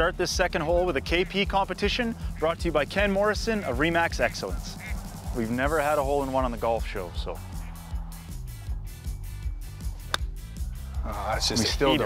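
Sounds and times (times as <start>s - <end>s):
background music with steady beat: 0.0s - 12.0s
golf club striking ball: 10.0s - 10.3s.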